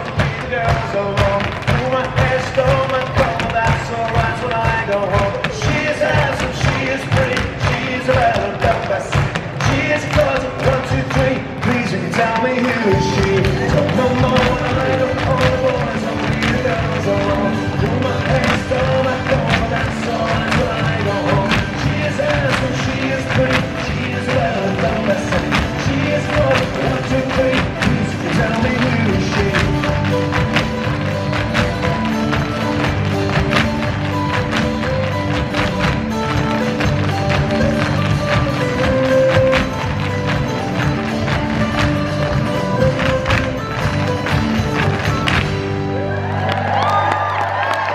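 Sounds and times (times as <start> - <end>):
hard shoes tapping on stage: 0.0 - 45.9
dance tune music: 0.0 - 46.3.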